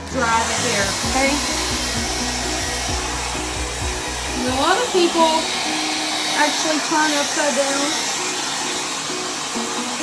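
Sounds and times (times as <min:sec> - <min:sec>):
hair dryer blowing: 0:00.0 - 0:10.0.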